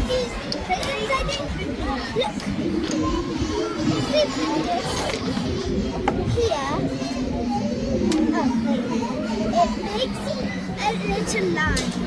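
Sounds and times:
children chattering and calling: 0.0s - 12.0s
steady low hum: 0.0s - 12.0s.

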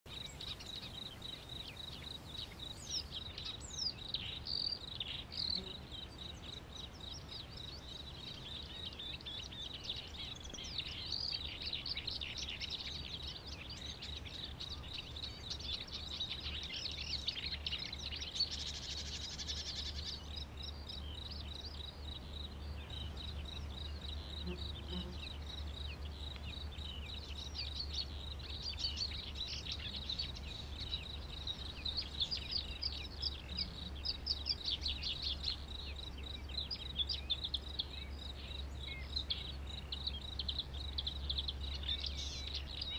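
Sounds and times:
small birds chirping: 0.1s - 42.9s.

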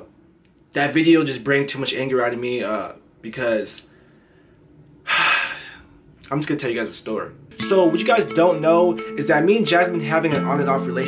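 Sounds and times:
man sighing heavily: 5.0s - 5.9s.

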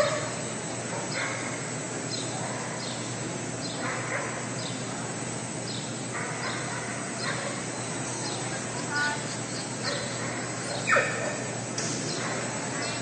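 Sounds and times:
dogs barking: 0.0s - 4.8s, 6.0s - 13.0s
steady background noise: 0.0s - 13.0s.

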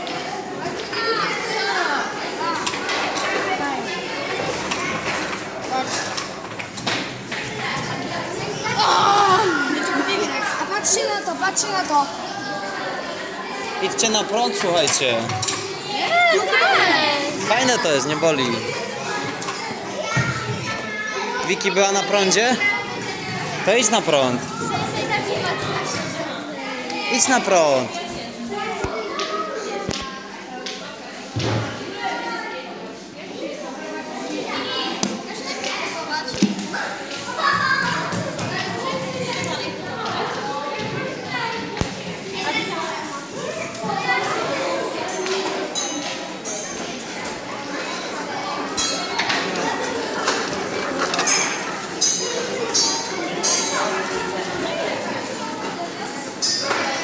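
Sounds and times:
children chattering: 0.0s - 57.0s.

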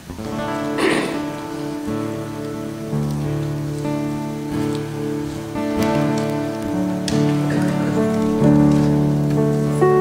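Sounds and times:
acoustic guitars strumming: 0.0s - 10.0s
keyboard chords: 0.0s - 10.0s.

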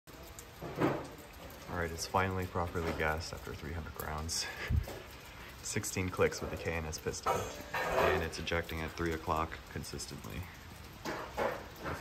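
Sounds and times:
man speaking: 1.7s - 4.6s, 5.6s - 10.6s.

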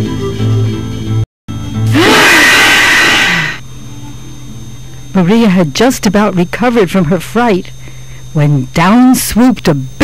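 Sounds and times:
cartoon rushing whoosh: 1.9s - 3.6s
faint low hum: 1.9s - 10.0s.

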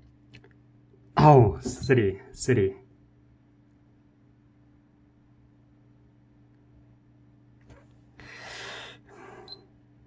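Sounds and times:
person breathing out hard: 8.2s - 9.5s.

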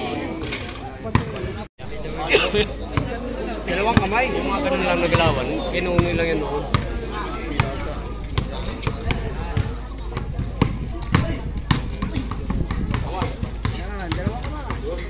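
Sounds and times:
chatter of voices: 0.0s - 15.0s.

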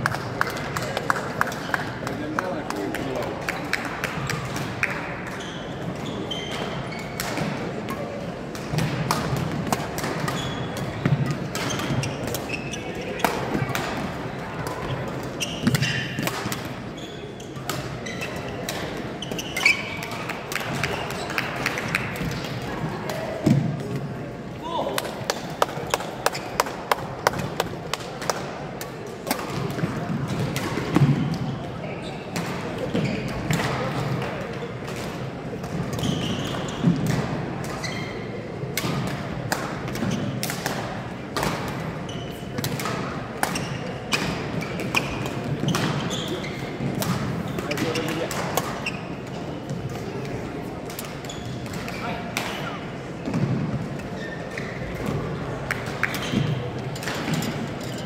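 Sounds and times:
murmur of voices: 0.0s - 58.0s
shoe squeaks on floor: 5.4s - 7.2s, 10.3s - 10.8s, 11.6s - 13.5s, 15.4s - 16.2s, 16.9s - 20.1s, 31.5s - 33.4s, 35.9s - 37.0s, 37.8s - 38.4s, 42.0s - 42.5s, 43.5s - 46.8s, 47.5s - 49.6s, 51.2s - 52.1s, 54.1s - 54.9s
rackets striking shuttlecock: 42.6s - 48.8s.

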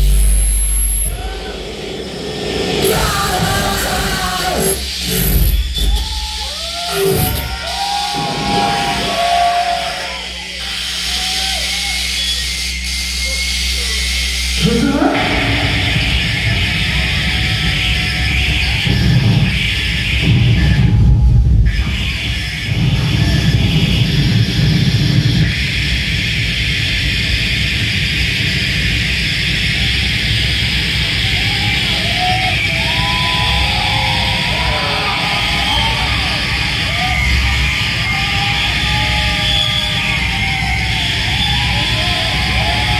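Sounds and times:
dense wall of harsh noise: 0.0s - 42.9s
low steady drone: 8.0s - 39.9s.

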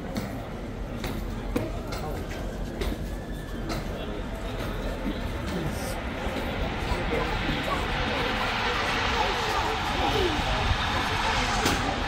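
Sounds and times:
indistinct chatter of people: 0.0s - 12.0s
outdoor street noise: 0.0s - 12.0s.

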